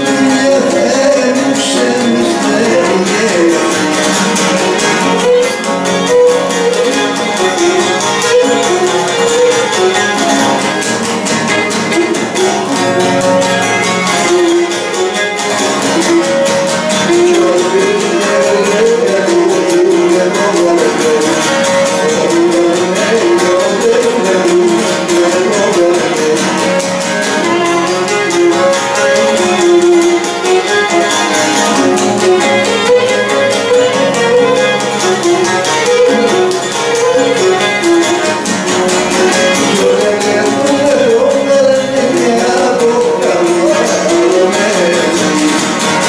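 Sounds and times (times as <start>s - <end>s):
bowed lyra melody: 0.0s - 46.0s
lute strumming chords: 0.0s - 46.0s.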